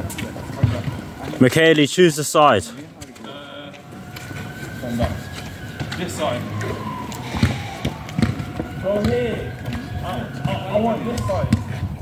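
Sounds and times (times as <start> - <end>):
thuds of feet and ball: 7.3 - 12.0.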